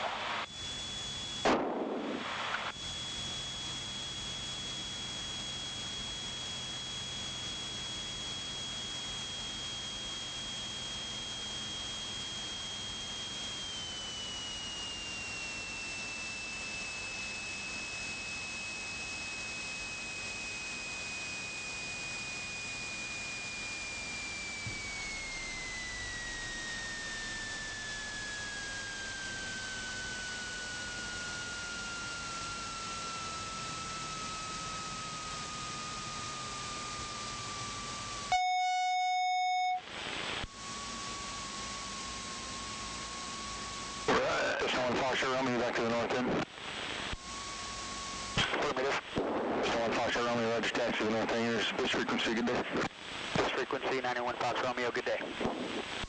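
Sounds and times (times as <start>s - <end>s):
flat buzzing tone: 0.0s - 49.5s
electrical whine in intercom: 0.0s - 56.0s.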